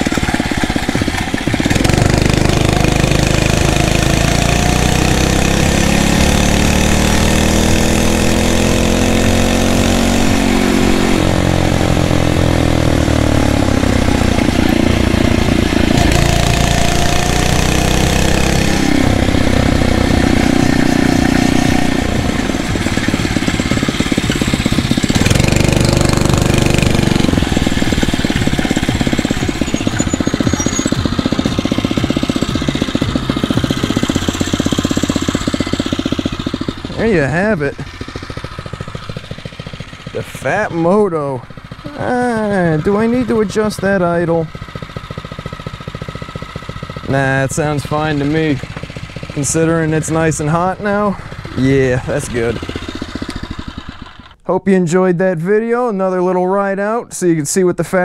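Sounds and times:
motorized bicycle engine running: 0.0 - 9.5, 11.4 - 37.0, 37.8 - 54.4.

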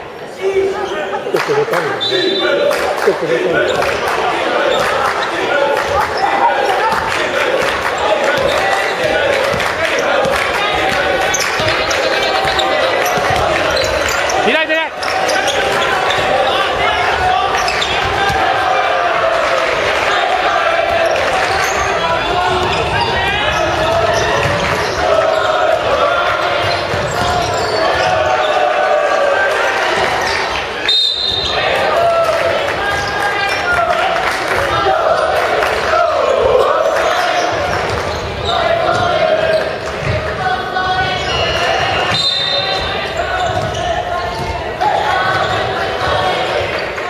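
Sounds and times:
players shouting: 0.2 - 47.0
referee's whistle: 2.0 - 2.6, 30.8 - 31.6, 41.2 - 44.0
basketball bouncing on court: 6.8 - 14.2, 21.6 - 25.4, 26.5 - 28.2, 42.8 - 46.2.

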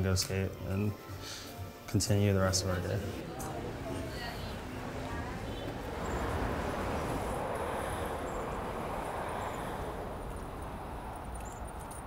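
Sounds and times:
passing traffic rushing: 2.7 - 12.0.

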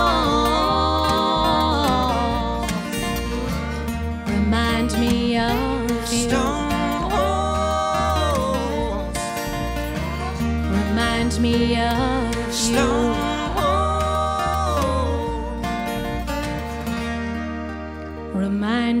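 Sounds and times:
acoustic guitar: 0.0 - 19.0
pedal steel guitar sliding notes: 0.0 - 19.0
upright bass: 0.0 - 19.0.

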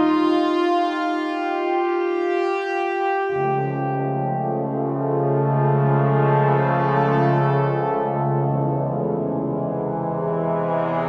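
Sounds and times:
brass chord over low bass: 3.2 - 11.0.

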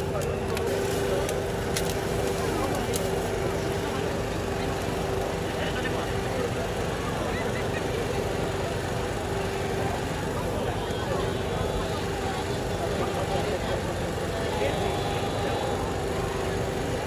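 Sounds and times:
constant hum and rumble: 0.0 - 17.0
indistinct voices: 0.0 - 17.0.

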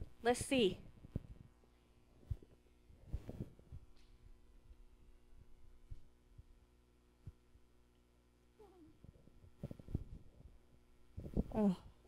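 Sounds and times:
microphone handling thumps: 0.8 - 1.6, 9.0 - 11.6.

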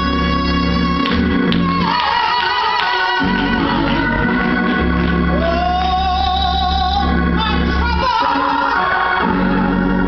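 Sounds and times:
sustained organ chords: 0.0 - 10.0.

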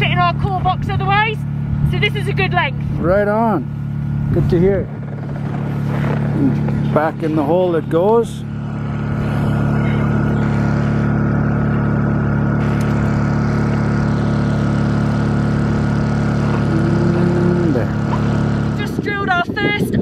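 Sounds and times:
engine droning steadily: 0.0 - 20.0.

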